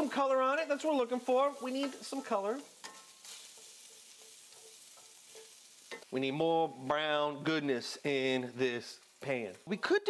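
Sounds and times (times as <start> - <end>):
vegetables sizzling in oil: 0.0 - 10.0.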